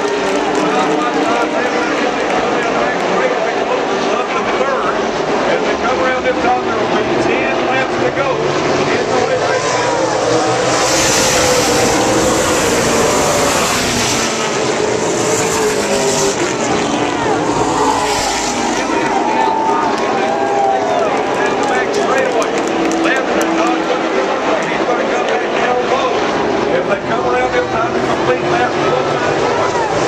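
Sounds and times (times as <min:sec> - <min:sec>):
race car engines passing: 0:00.0 - 0:30.0.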